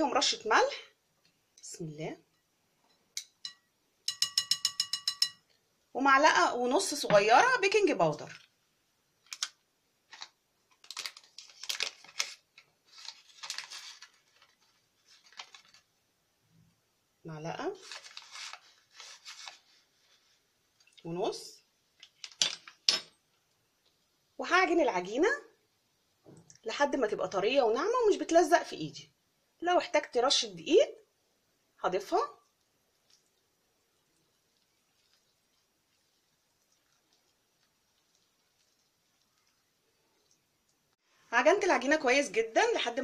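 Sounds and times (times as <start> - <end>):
utensils clinking against glass bowl: 3.2 - 5.5.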